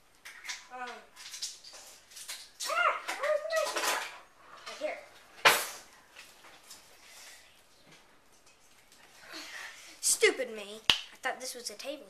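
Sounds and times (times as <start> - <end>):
child's wordless voice: 0.7 - 1.2, 2.6 - 5.1, 9.2 - 12.0.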